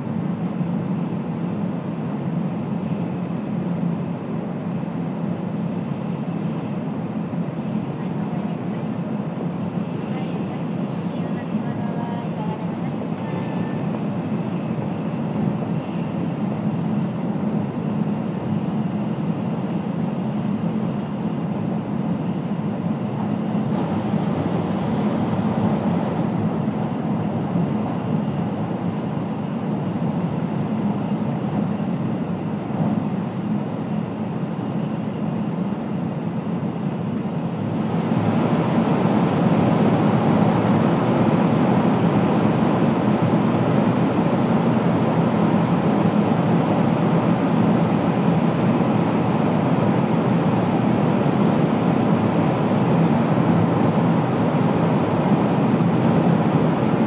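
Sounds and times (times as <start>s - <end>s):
train cabin rumble and rush: 0.0s - 57.0s.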